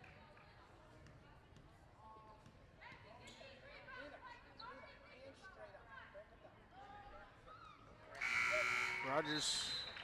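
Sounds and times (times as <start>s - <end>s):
faint crowd chatter: 0.0s - 10.0s.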